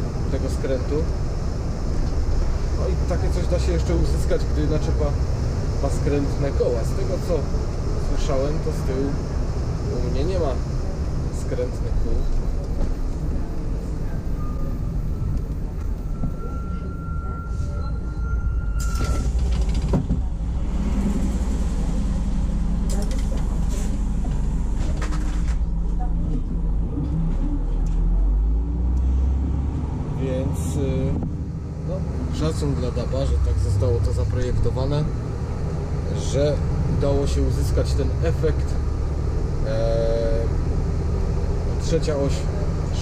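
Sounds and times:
bus engine running: 0.0 - 43.0
road noise: 0.0 - 43.0
thin steady whistle: 14.3 - 15.4, 16.0 - 19.3.

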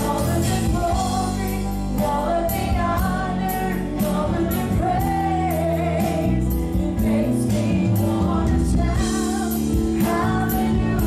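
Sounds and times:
drum kit beat: 0.0 - 11.0
guitar: 0.0 - 11.0
keyboard: 0.0 - 11.0
woman singing lead: 0.0 - 11.0.

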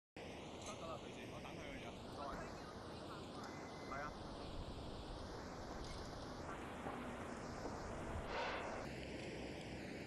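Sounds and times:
traffic hum: 0.2 - 10.0.

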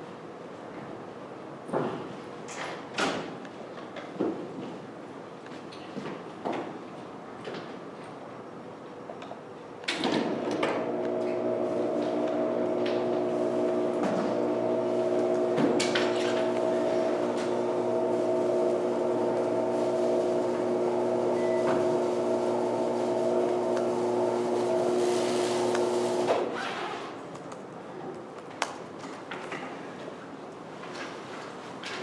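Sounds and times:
steady mechanical hum: 0.0 - 32.0.

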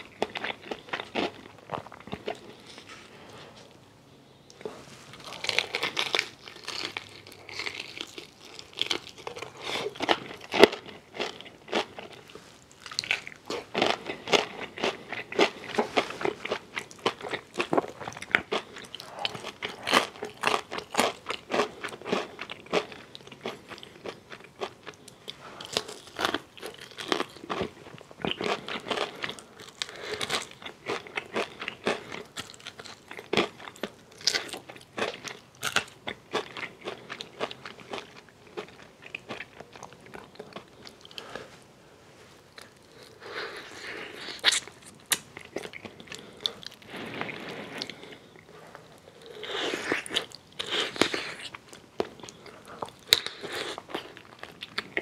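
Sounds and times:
crunching fried chicken: 4.6 - 41.3.

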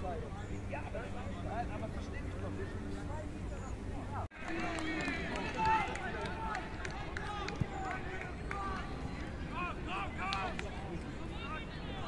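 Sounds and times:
players shouting and calling: 0.0 - 12.0.

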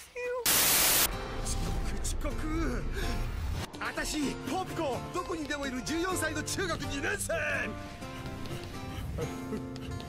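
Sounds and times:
static hiss burst: 0.4 - 1.1
music: 1.1 - 10.0.

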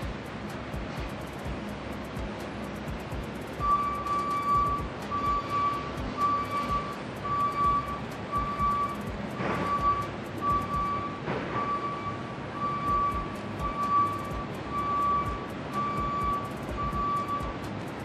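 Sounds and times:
high electronic beeps: 0.9 - 17.7
warehouse store background noise: 3.4 - 18.0.

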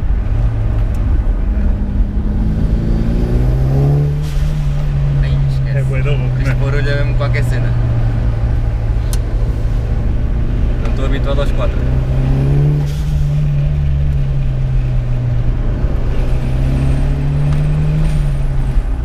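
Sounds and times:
car engine revving inside cabin: 0.0 - 19.0.

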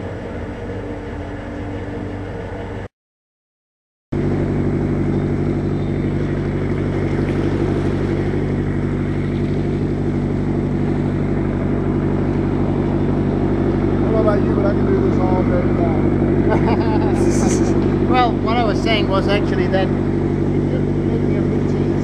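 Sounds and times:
submarine engine low drone: 0.0 - 2.9, 4.2 - 22.0.

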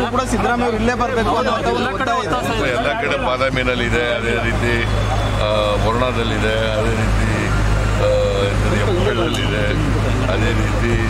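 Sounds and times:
crowd: 0.0 - 11.0
large vehicle engine idling: 0.0 - 11.0
man speaking into microphones: 0.0 - 11.0.

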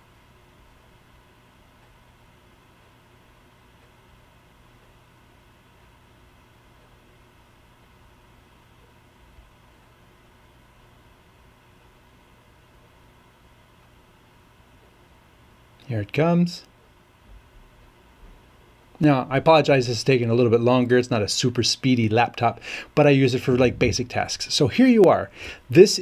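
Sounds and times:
low hum: 17.3 - 26.0
steady hiss: 18.4 - 26.0.

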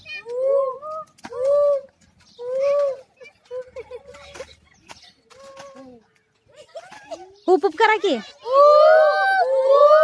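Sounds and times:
children hooting like monkeys: 0.3 - 3.2, 8.3 - 10.0.

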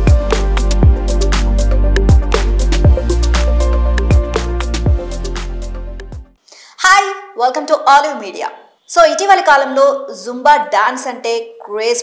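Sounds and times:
upbeat dance music: 0.0 - 6.3
woman's voice: 6.8 - 12.0.

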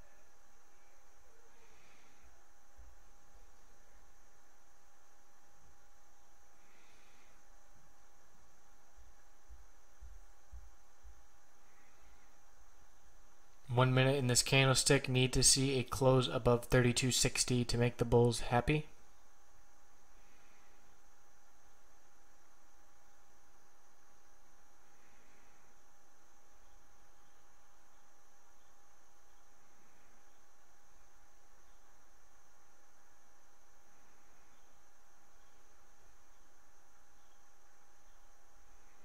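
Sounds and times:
faint electrical hum: 0.0 - 39.0
microphone hiss: 0.0 - 39.0.

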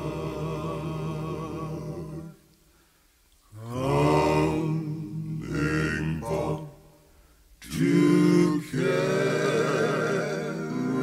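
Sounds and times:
male quartet singing in harmony: 0.0 - 2.5, 3.6 - 11.0.

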